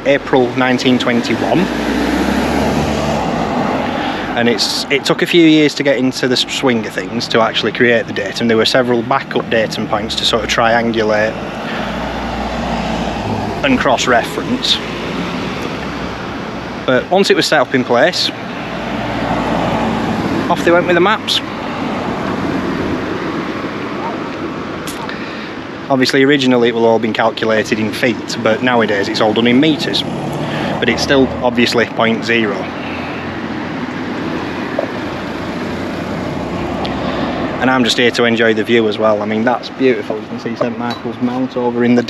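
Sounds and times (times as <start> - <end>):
steady rushing noise: 0.0 - 42.0.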